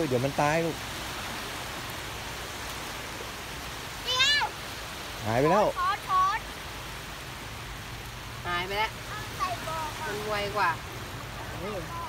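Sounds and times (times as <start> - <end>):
surf washing on beach: 0.0 - 12.0.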